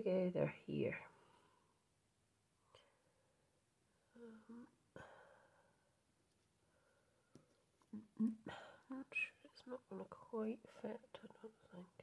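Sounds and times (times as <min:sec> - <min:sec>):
woman humming mm-hmm: 0:04.2 - 0:04.8, 0:08.0 - 0:09.4.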